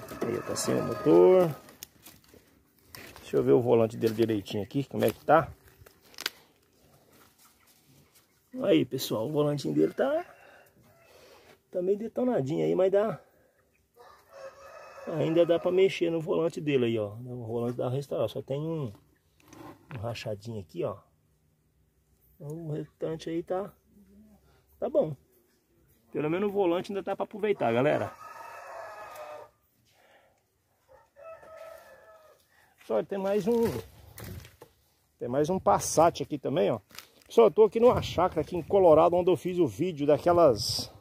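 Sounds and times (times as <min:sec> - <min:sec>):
distant rooster crowing: 0:00.0 - 0:01.6, 0:14.0 - 0:16.0, 0:27.6 - 0:29.6, 0:30.9 - 0:32.4.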